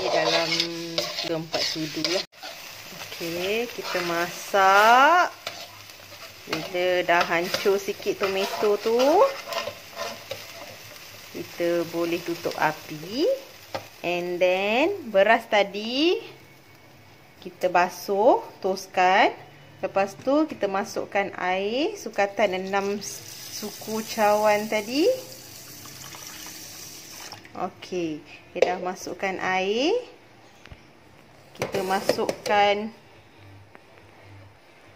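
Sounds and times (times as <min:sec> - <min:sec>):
spatula scraping a metal pan: 0:00.0 - 0:02.7, 0:03.7 - 0:04.3, 0:05.4 - 0:10.8
food sizzling in a wok: 0:00.0 - 0:18.5, 0:21.9 - 0:27.4, 0:31.6 - 0:32.5
water pouring into pot: 0:25.0 - 0:27.5.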